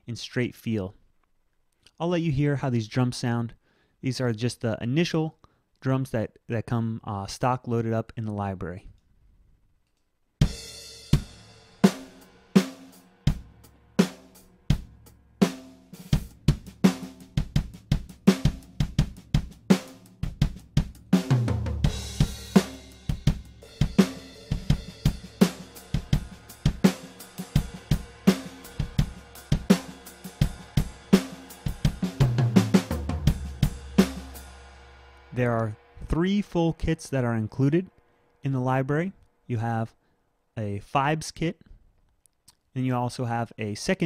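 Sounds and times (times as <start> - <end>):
country drum groove: 10.4 - 37.9.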